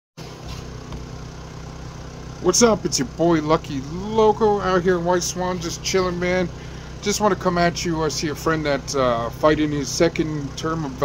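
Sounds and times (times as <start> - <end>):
motor humming: 0.2 - 11.0.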